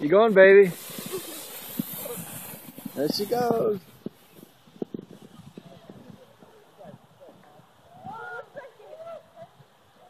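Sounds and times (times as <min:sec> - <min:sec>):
sled scraping over snow: 0:00.0 - 0:09.7.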